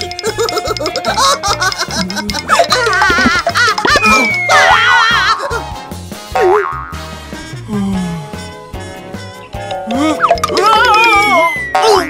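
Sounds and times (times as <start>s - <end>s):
warbling springy cartoon tones: 0.0s - 5.6s, 9.8s - 12.0s
light background music: 0.0s - 12.0s
falling whistle-like glide: 4.0s - 5.1s.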